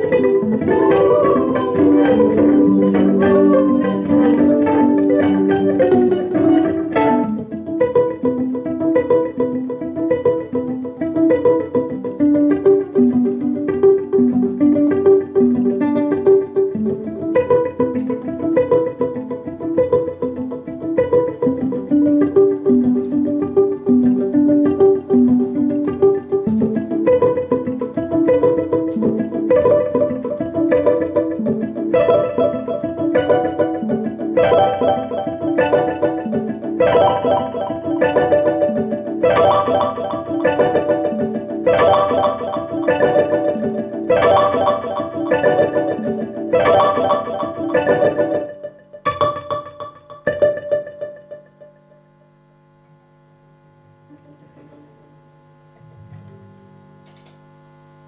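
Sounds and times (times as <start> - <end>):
violin plucked pizzicato: 0.0 - 8.2, 28.3 - 48.6.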